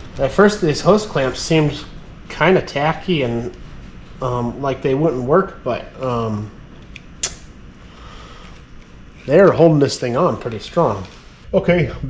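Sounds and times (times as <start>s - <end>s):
sharp click: 6.9s - 7.5s.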